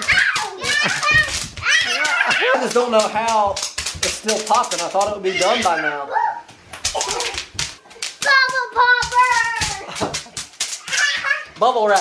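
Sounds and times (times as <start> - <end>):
bubble wrap popping: 0.0 - 5.7, 6.6 - 12.0.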